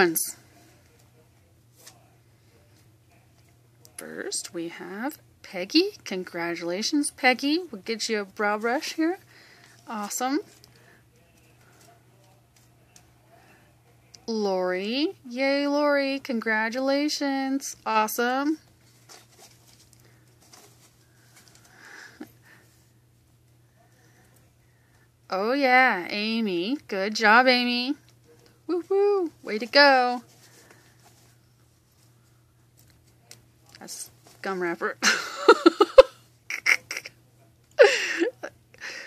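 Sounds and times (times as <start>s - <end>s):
low steady hum: 0.0s - 39.0s
person giggling and laughing: 35.0s - 37.2s, 37.8s - 38.6s.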